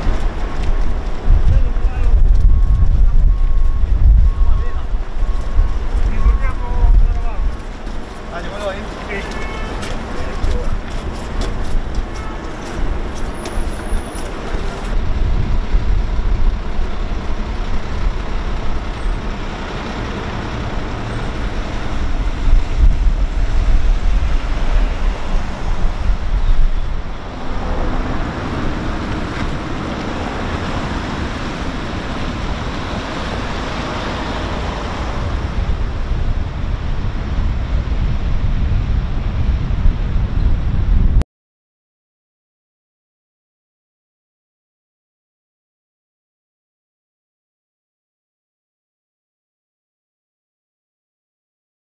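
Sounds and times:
traffic rumble: 0.0 - 41.2.

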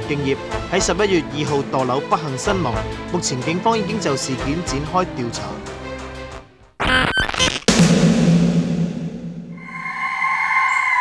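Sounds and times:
low drone: 9.1 - 11.0
high held tone: 9.5 - 11.0.

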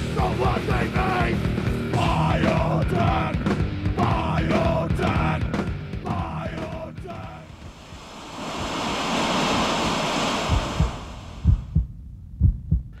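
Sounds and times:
rushing noise: 7.1 - 11.8.

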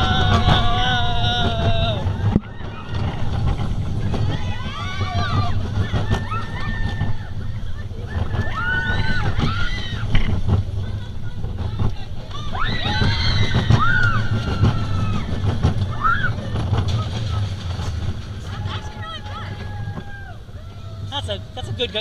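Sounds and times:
wind on microphone: 0.0 - 20.3
roller coaster wheels rumbling: 0.0 - 22.0
riders squealing and shouting: 4.2 - 10.4.

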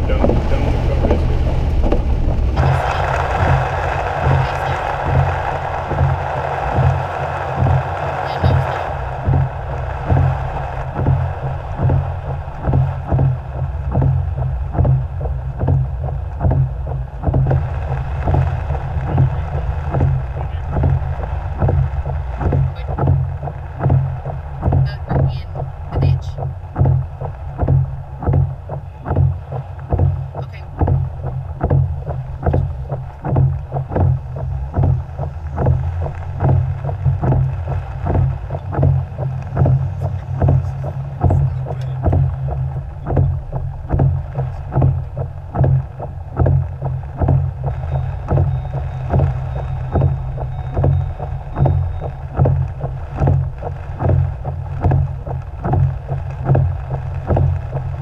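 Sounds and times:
car engine and road rumble: 0.0 - 58.0
heavy rain: 0.0 - 58.0
water spraying against car: 0.0 - 58.0.

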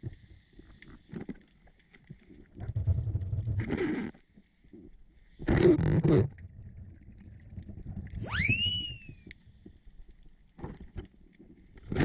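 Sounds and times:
underwater low rumble: 0.0 - 12.0
whistle-like sweeping tone: 8.2 - 9.3.

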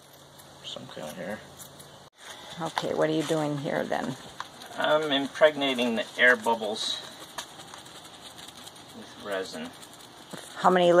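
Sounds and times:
background hiss: 4.2 - 10.6.

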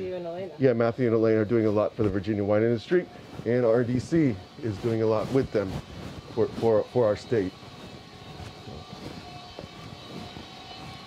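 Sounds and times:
machinery hum and whir: 0.0 - 11.0.

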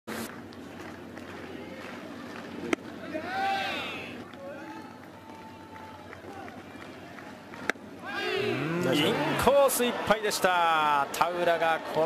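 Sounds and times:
crowd murmur: 0.6 - 12.0.

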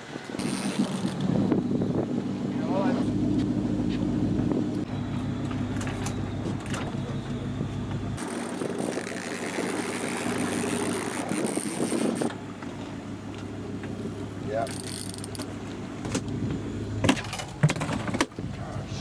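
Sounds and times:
boat engine droning: 0.0 - 17.6.

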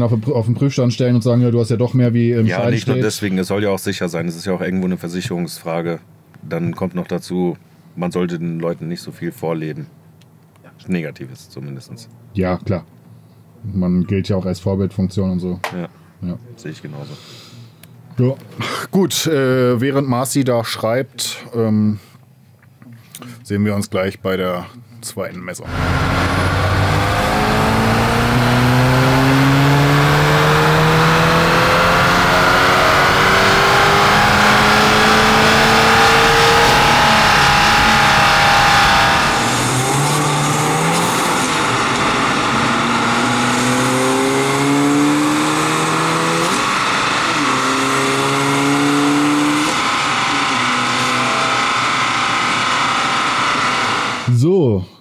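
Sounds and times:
turbocharged engine revving on dyno: 25.6 - 54.4.

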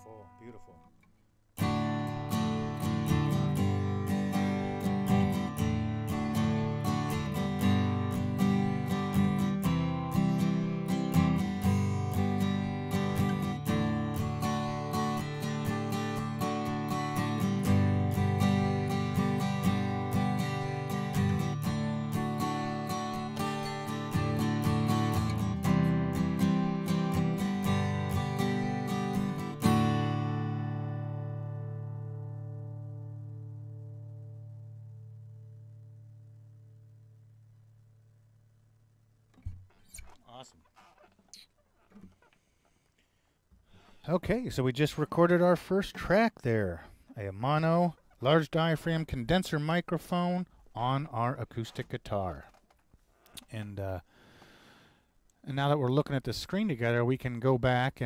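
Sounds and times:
acoustic guitar strumming chords: 0.0 - 37.8.

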